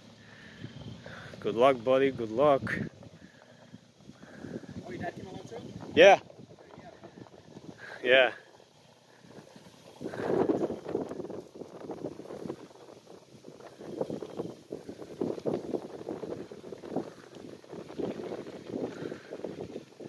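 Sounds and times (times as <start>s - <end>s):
wind buffeting microphone: 0.4s - 20.0s.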